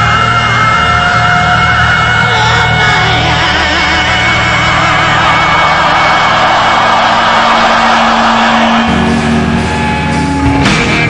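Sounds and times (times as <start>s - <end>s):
long wavering high note: 2.9s - 10.4s
hard rock band playing: 3.2s - 11.0s.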